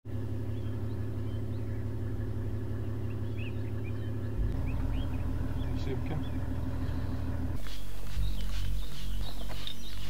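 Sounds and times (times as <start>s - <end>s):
vehicle engine idling: 0.1s - 10.0s
bird chirps: 0.2s - 10.0s.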